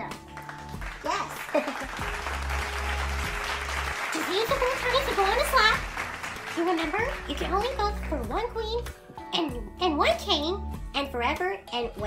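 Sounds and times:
background music with bass tone: 0:00.0 - 0:12.0
crowd applause: 0:00.4 - 0:07.8.

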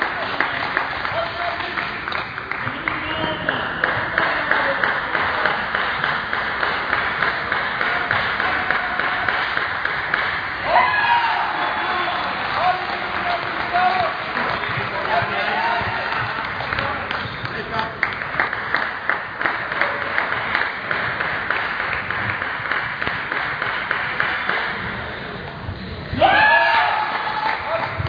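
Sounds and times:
murmur of voices in a hall: 0:00.0 - 0:22.1, 0:23.9 - 0:28.0
people clapping: 0:00.0 - 0:25.2, 0:26.2 - 0:28.0.

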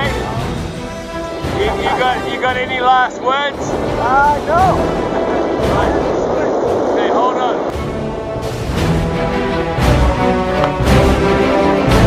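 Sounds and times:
soundtrack music with held tones: 0:00.0 - 0:12.0
man laughing: 0:01.4 - 0:02.6
heavy low hit: 0:03.5 - 0:09.9.

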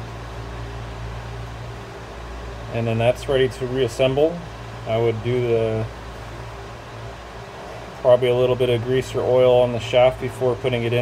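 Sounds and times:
steady low hum: 0:00.0 - 0:11.0.

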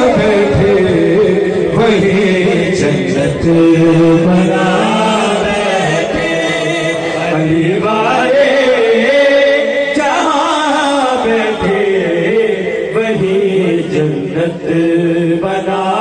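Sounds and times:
man chanting into a microphone: 0:00.0 - 0:16.0.

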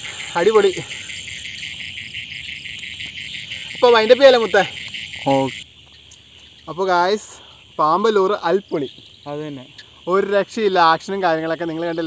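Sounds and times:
crickets chirring: 0:00.0 - 0:12.0
faint insect drone: 0:00.0 - 0:12.0.

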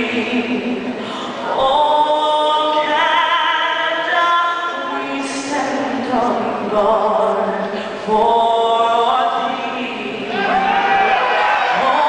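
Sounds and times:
person singing anthem over sound system: 0:00.0 - 0:12.0.

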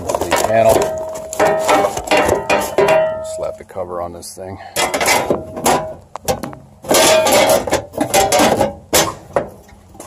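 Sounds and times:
metal clanking and rattling: 0:00.0 - 0:03.6, 0:04.8 - 0:10.0.

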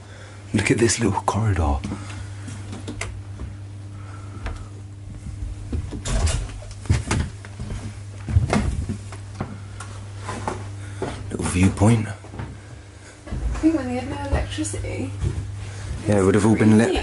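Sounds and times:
steady low hum: 0:00.0 - 0:17.0
footsteps on wooden deck boards: 0:04.4 - 0:06.0, 0:13.2 - 0:16.1.

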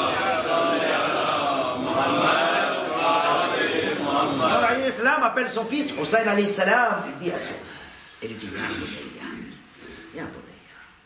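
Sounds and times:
men chanting in unison: 0:00.0 - 0:05.2.

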